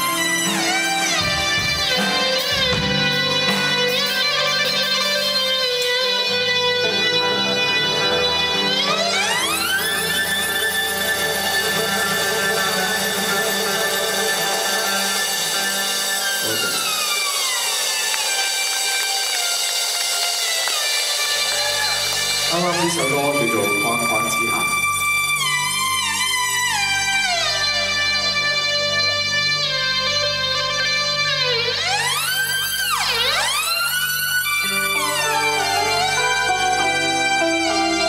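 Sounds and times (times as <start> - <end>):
rock band overdriven sustained tones: 0.0 - 38.0.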